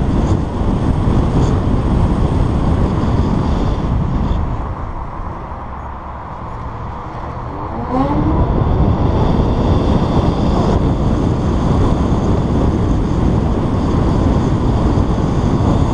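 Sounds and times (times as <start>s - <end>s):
rising electric motor whine: 0.0s - 15.9s
road rumble: 0.0s - 15.9s
wind rushing over microphone: 0.0s - 15.9s.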